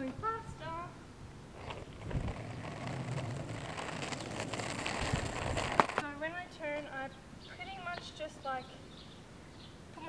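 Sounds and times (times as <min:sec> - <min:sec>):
skateboard wheels rolling on asphalt: 0:01.4 - 0:07.0.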